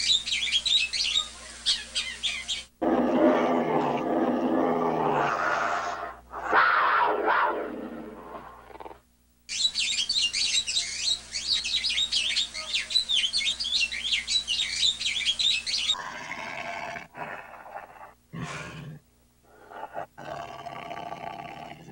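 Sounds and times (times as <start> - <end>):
many small birds chirping: 0.0 - 2.7, 9.6 - 16.0
big cat roar: 2.8 - 9.0, 16.0 - 21.9.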